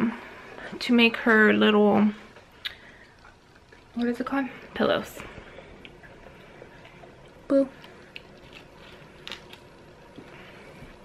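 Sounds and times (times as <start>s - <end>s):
faint steady background hum: 0.0s - 11.0s.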